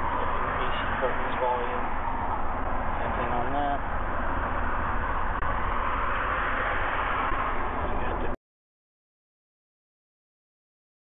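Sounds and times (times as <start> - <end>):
background rumble and hiss: 0.0 - 8.4.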